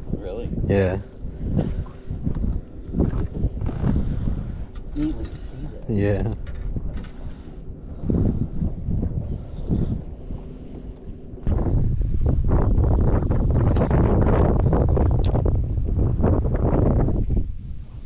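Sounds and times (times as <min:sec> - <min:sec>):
heavy steady rumble: 0:00.0 - 0:18.0
wind buffeting microphone: 0:00.0 - 0:18.0.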